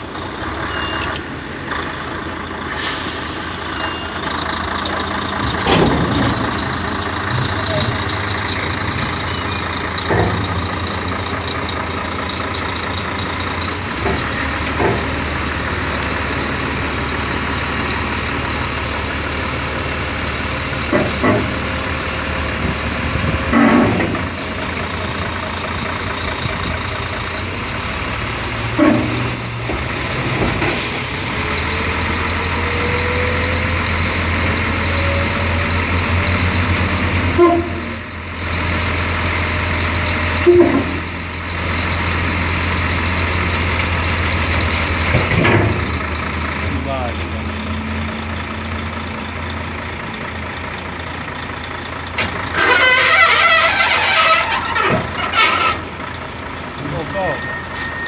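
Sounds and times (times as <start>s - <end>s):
diesel truck engine under load: 0.0s - 58.0s
short clunks: 5.5s - 6.7s, 10.0s - 10.8s, 14.0s - 15.2s.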